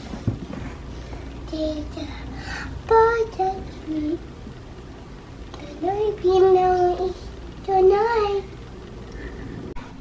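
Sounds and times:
young child singing: 1.4 - 4.2, 5.6 - 8.6.

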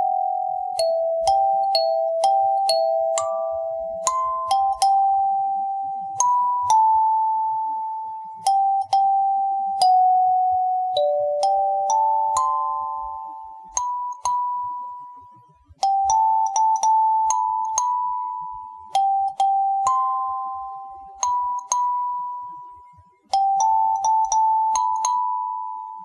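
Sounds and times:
kalimba melody: 0.0 - 15.0, 15.8 - 22.6, 23.3 - 26.0.

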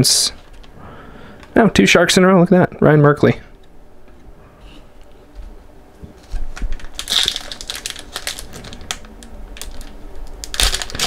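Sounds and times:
foil wrapper crinkling and tearing: 6.2 - 11.0.

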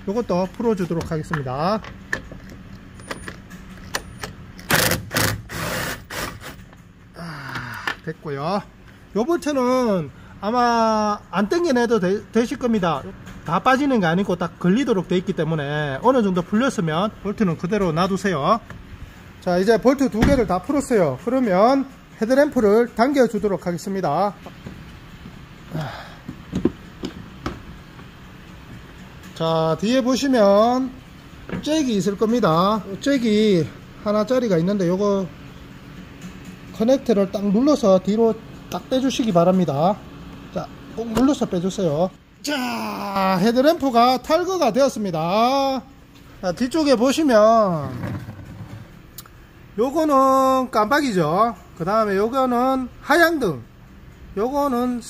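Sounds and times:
ratchet ratcheting: 2.1 - 6.8.

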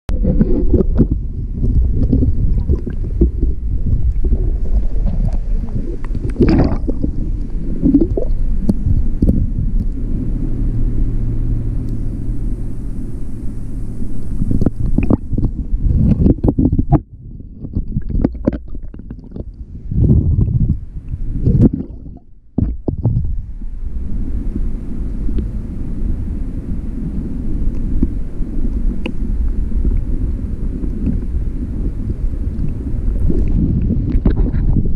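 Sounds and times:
muffled underwater water rumble: 0.1 - 34.9.

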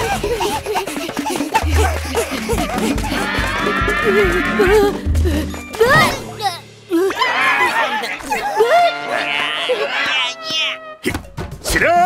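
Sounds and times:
music: 0.0 - 8.2, 11.0 - 12.0
loud shout: 7.1 - 10.8.

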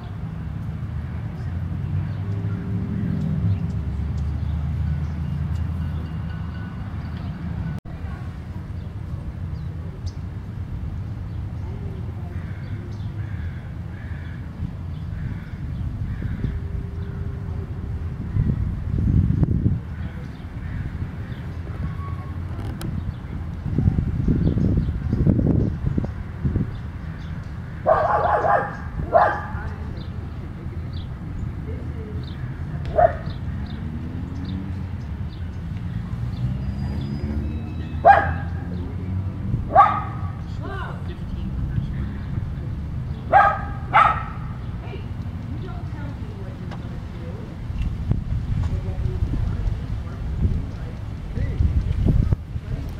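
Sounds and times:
wind rumble on microphone: 6.8 - 52.9
dog barking: 27.9 - 29.6, 32.9 - 33.4, 38.0 - 38.6, 39.7 - 40.4, 43.3 - 44.5.

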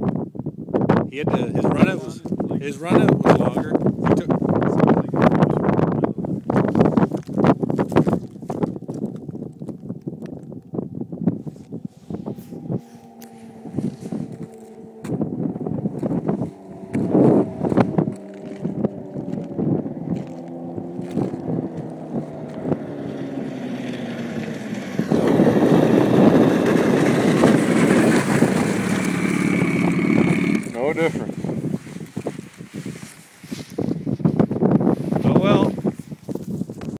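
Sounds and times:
wind buffeting microphone: 0.0 - 36.9
steady rushing noise: 11.2 - 35.8
distant snowmobile engine: 11.3 - 33.8.

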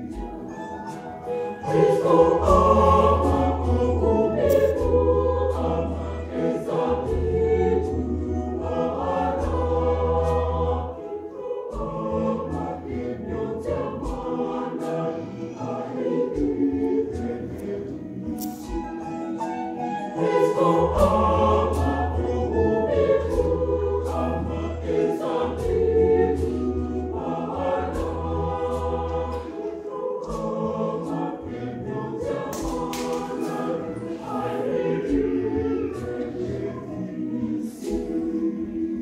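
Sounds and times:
mixed choir singing: 0.0 - 39.0
gourd shaker: 0.2 - 5.7.

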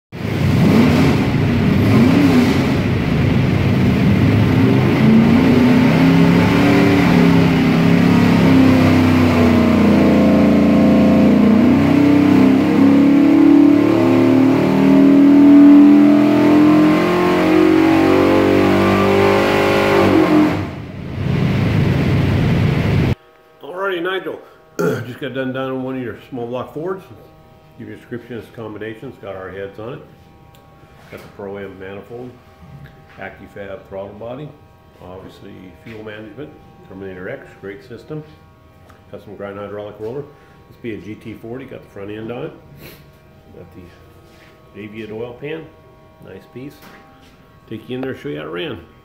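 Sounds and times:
engine revving under load: 0.2 - 23.2, 24.7 - 49.0.

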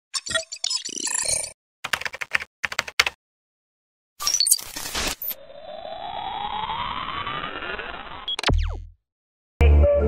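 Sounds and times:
rising electronic tone: 5.2 - 8.8.

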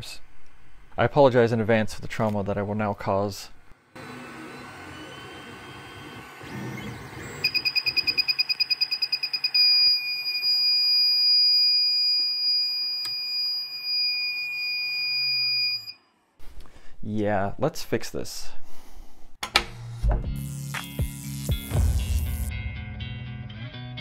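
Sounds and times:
continuous high-pitched alarm tone: 6.8 - 16.0
rapid high beeping: 7.4 - 10.0.

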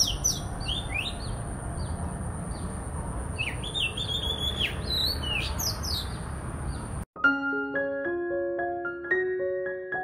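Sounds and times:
bird singing whistled notes: 0.0 - 1.9, 3.4 - 6.2.

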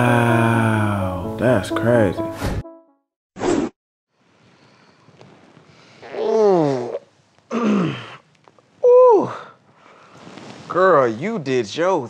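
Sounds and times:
person yawning: 6.0 - 8.2, 8.8 - 9.6.

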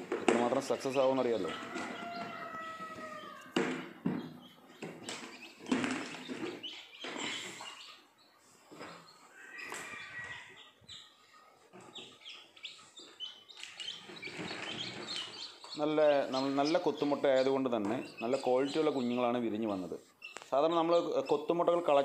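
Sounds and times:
chicks peeping: 0.0 - 22.0.

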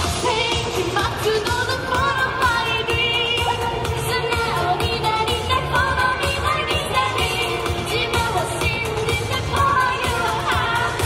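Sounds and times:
steady dance beat: 0.0 - 11.0
woman singing into a microphone: 0.0 - 11.0.

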